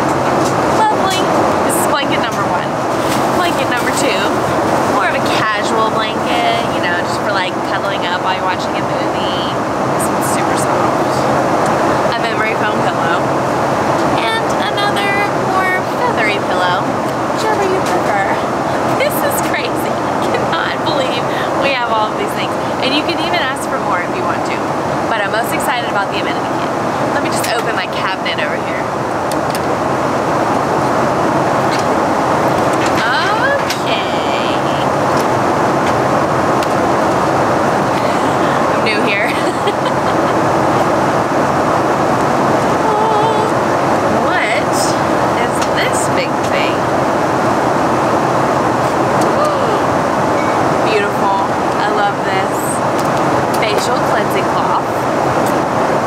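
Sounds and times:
airliner cabin noise: 0:00.0 - 0:56.0.

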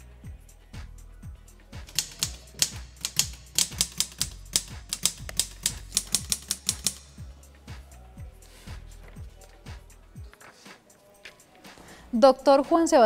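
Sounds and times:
background music with steady beat: 0:00.0 - 0:13.0
typewriter key clicks: 0:01.9 - 0:07.0.

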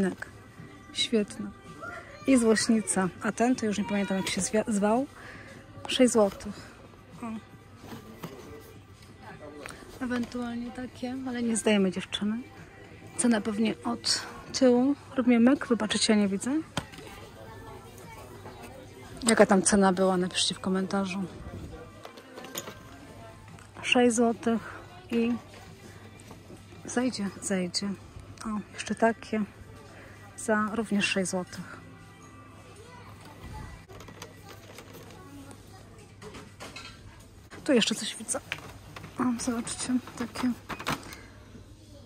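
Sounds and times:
faint indistinct voices: 0:00.0 - 0:42.0
store ambience hum: 0:00.0 - 0:42.0
packaging clicks and rustles: 0:33.2 - 0:35.6.

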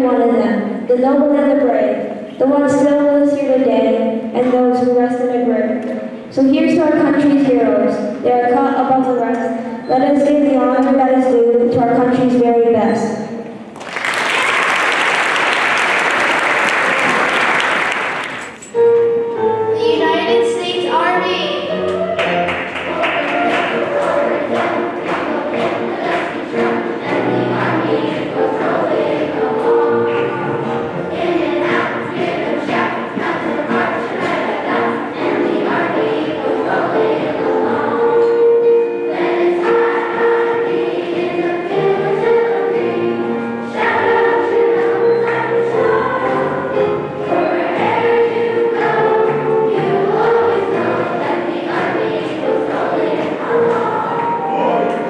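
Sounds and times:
children's choir singing: 0:00.0 - 0:55.0.

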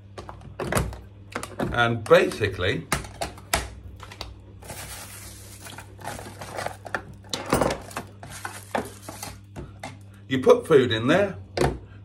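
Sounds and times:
steady low hum: 0:00.0 - 0:12.0
plastic wrapping rustling: 0:04.0 - 0:09.5
clinks and knocks of containers: 0:04.6 - 0:10.0.

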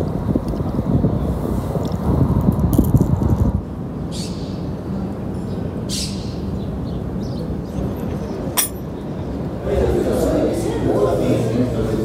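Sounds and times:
sharp clink: 0:08.6 - 0:08.9.

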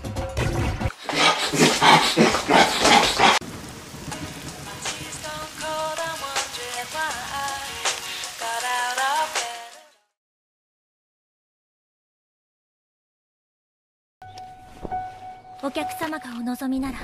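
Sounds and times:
rain pattering: 0:02.2 - 0:09.9
slow soft music: 0:04.0 - 0:10.1, 0:14.2 - 0:17.0.

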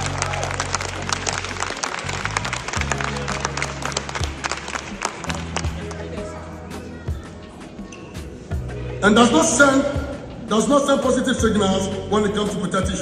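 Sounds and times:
audience applauding: 0:00.0 - 0:06.2
music with deep bass line: 0:00.0 - 0:13.0.

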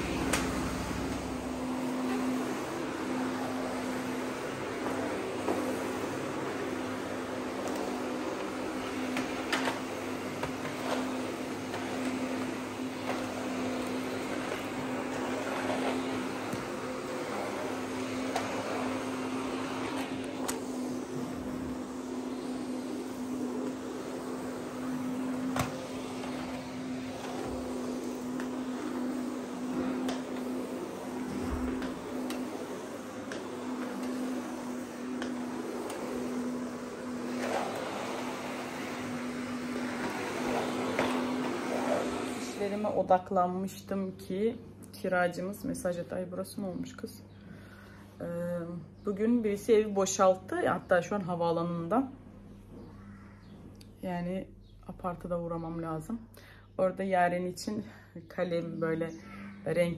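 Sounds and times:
vacuum cleaner running: 0:00.0 - 0:54.3.

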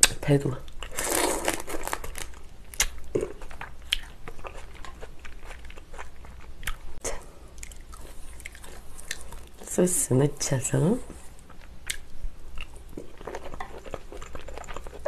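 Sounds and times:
chewing and biting prawn: 0:00.8 - 0:09.6, 0:11.4 - 0:15.0.

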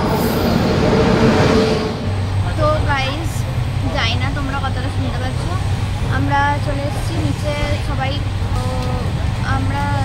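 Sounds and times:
locomotive rumbling rail noise: 0:00.0 - 0:10.0.

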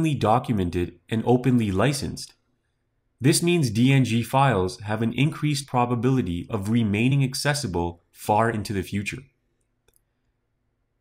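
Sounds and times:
narrator speaking: 0:00.0 - 0:02.4, 0:03.2 - 0:09.4.

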